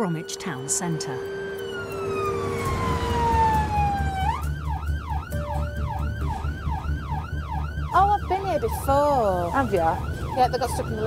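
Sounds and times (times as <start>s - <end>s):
ambulance siren: 0.0s - 11.0s
van engine rumble: 1.3s - 11.0s.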